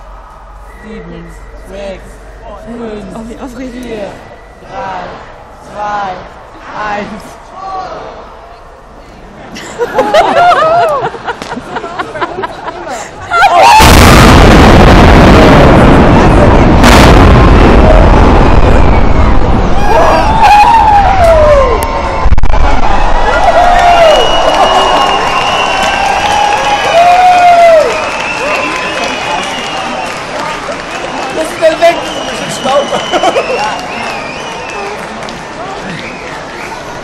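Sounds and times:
onlookers whooping and cheering: 0:09.8 - 0:11.4, 0:13.3 - 0:15.6, 0:16.8 - 0:37.0
loud explosion: 0:13.6 - 0:24.4
sharp crack: 0:13.8 - 0:19.5
building collapsing rumble: 0:13.8 - 0:24.4.

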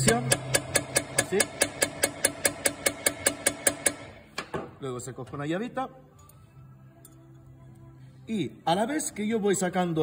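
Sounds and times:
hammer tapping metal: 0:00.0 - 0:04.1.

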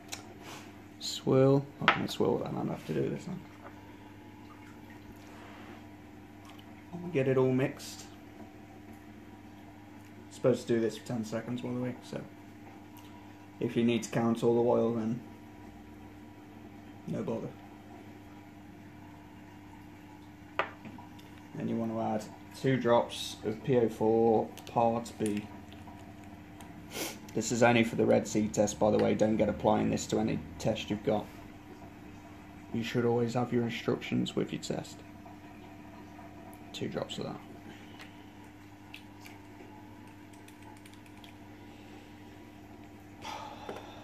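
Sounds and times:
faint steady hum: 0:00.0 - 0:44.0.

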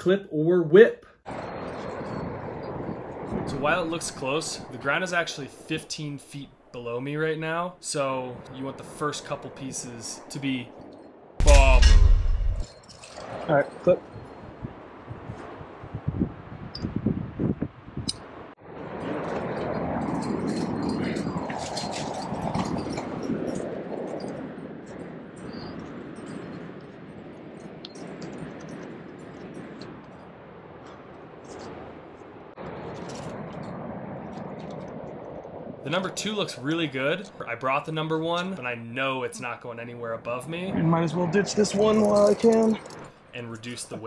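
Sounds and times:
steady rushing noise: 0:01.3 - 0:13.2, 0:14.5 - 0:44.0
metal climbing gear clinking: 0:11.4 - 0:13.4, 0:20.0 - 0:24.4.

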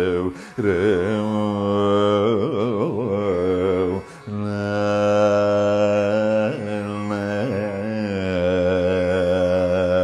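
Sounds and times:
man singing long note: 0:00.0 - 0:10.0.

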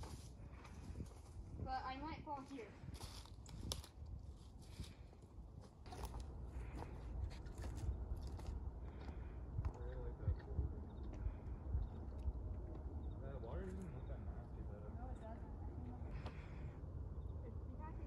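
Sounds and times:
low steady rumble: 0:00.0 - 0:18.0.

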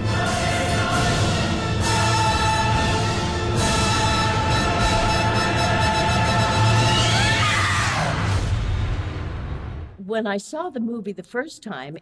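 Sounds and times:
orchestral horror score: 0:00.0 - 0:09.9.

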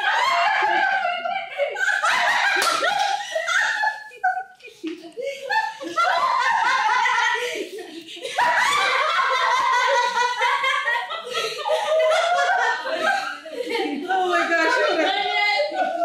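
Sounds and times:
loud laughter: 0:00.0 - 0:16.0
indistinct talk: 0:12.9 - 0:16.0.

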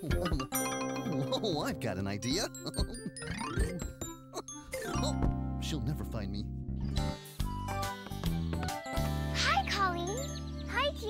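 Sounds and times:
child exclaiming excitedly: 0:09.4 - 0:11.0.

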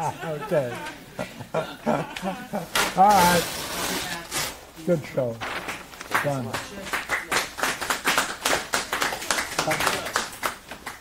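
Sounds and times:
people clapping: 0:05.5 - 0:11.0.

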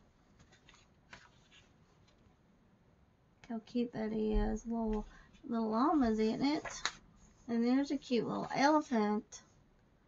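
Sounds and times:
paper pages rustling: 0:00.2 - 0:02.4.

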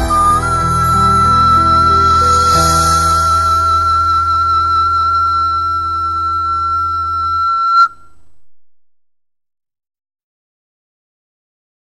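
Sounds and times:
low sustained accompaniment: 0:00.0 - 0:08.2
pan flute long high note: 0:00.0 - 0:08.3.

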